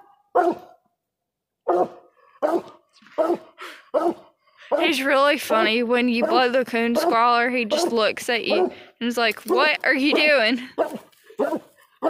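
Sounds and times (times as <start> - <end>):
dog barking: 0.0 - 0.8, 1.6 - 4.9, 6.2 - 7.9, 8.5 - 8.8, 9.5 - 11.8.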